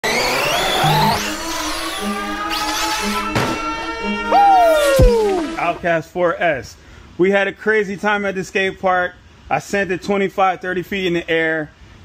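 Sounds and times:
electric motor whining: 0:00.0 - 0:05.8
music: 0:00.1 - 0:05.7
tyre noise: 0:02.5 - 0:05.8.

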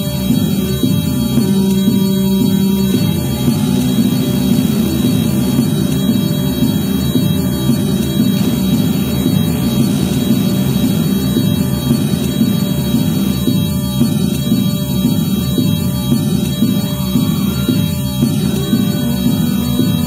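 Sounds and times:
loud low synthesizer drone: 0:00.0 - 0:20.0.

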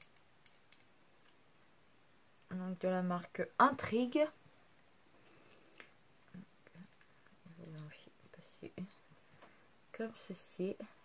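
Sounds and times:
woman speaking softly: 0:02.5 - 0:04.4, 0:06.3 - 0:09.0, 0:09.9 - 0:11.0.

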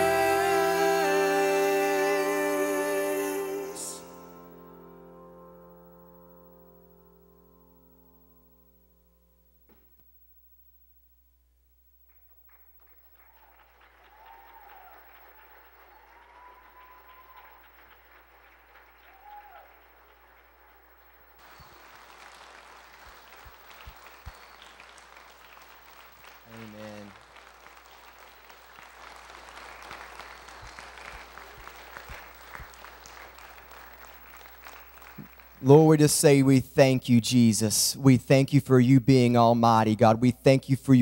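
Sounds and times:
congregation applauding: 0:00.0 - 0:04.4, 0:12.0 - 0:37.5.

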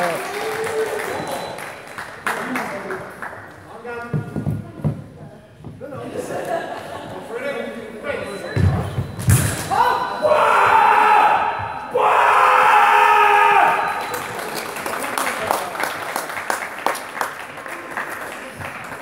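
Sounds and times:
people shouting: 0:09.7 - 0:14.0.

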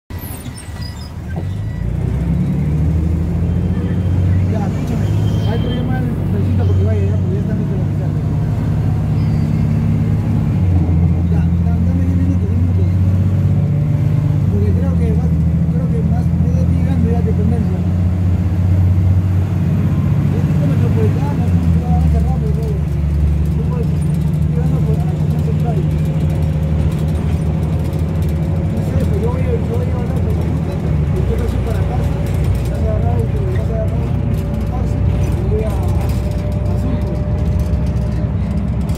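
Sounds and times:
bus engine droning: 0:00.1 - 0:38.9.

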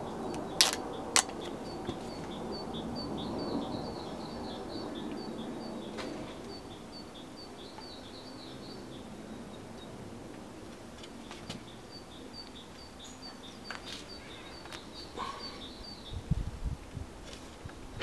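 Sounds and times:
small birds chirping: 0:00.0 - 0:16.4.

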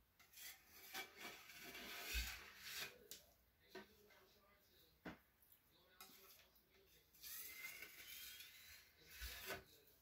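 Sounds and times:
scraping on painted surface: 0:00.2 - 0:04.0, 0:06.0 - 0:10.0.

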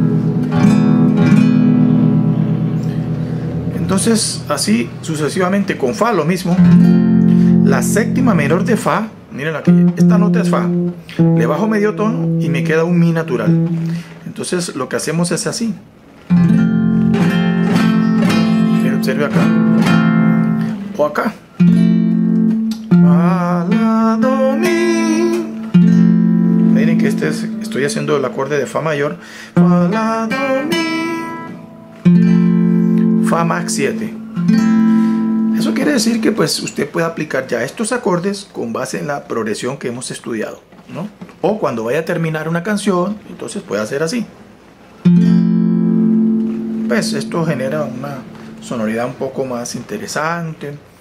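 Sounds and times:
classical guitar strummed chord: 0:00.0 - 0:04.1, 0:06.6 - 0:08.9, 0:09.6 - 0:14.1, 0:16.3 - 0:36.4, 0:45.0 - 0:49.4.

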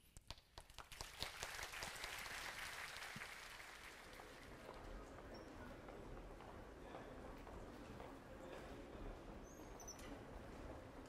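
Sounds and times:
audience applauding: 0:00.5 - 0:04.6.

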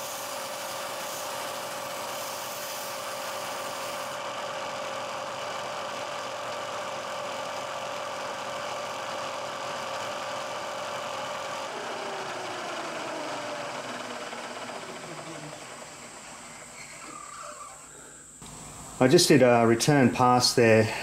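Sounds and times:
motor winding down: 0:00.0 - 0:18.0
milling machine cutting metal: 0:11.4 - 0:17.4.

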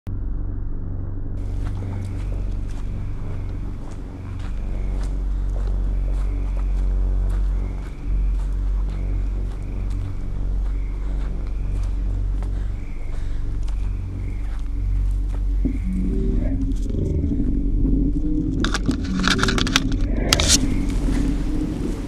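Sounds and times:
low rumble: 0:00.1 - 0:22.0
faint clicks and rustles: 0:18.5 - 0:21.3.

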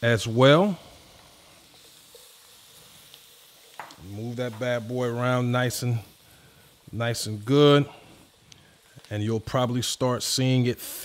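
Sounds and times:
onions sizzling: 0:00.0 - 0:11.0.

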